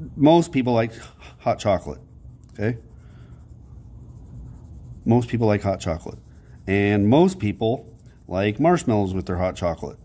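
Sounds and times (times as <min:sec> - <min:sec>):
pencil scratching on paper: 0:00.5 - 0:10.0.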